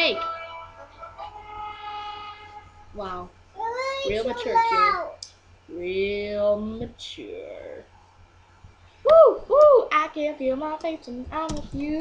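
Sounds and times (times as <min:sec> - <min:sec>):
single held note: 0:00.0 - 0:03.2.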